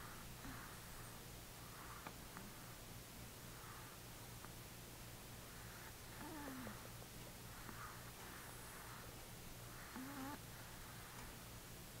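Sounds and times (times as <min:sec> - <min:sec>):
faint low hum: 0:00.0 - 0:12.0
small dog whining: 0:09.9 - 0:10.4.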